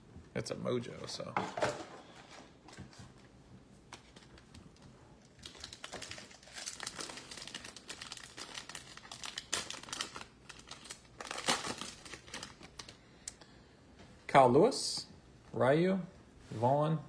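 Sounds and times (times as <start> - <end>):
foil wrapper tearing and crinkling: 5.3 - 13.0.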